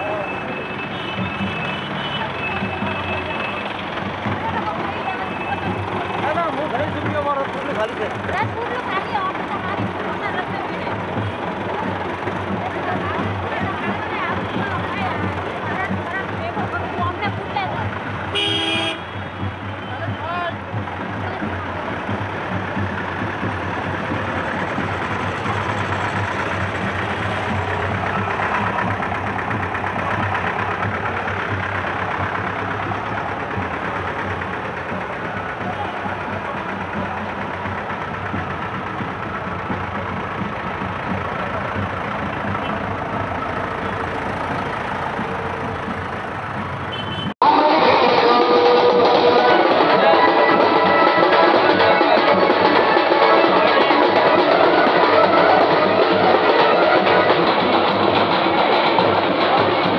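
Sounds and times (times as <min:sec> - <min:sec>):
people talking: 0:00.0 - 0:18.5, 0:19.4 - 0:46.1, 0:47.4 - 0:59.9
vehicles running: 0:00.0 - 0:59.9.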